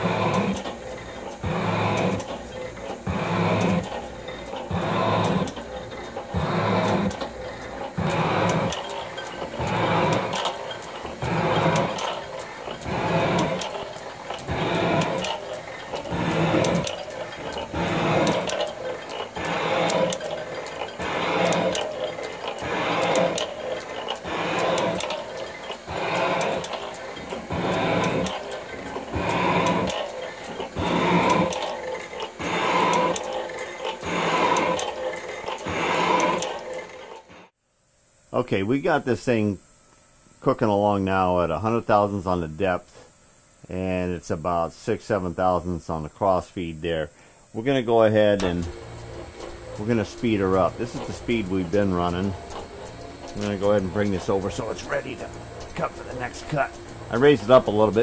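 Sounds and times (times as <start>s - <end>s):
metal shaper cutting strokes: 0.0s - 37.5s, 48.4s - 58.0s.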